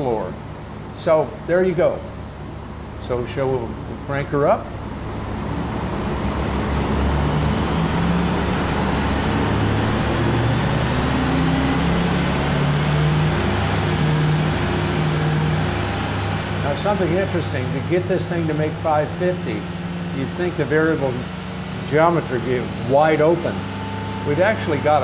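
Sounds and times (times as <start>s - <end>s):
diesel engine running: 0.0s - 25.0s
high turbocharger whine: 0.0s - 25.0s.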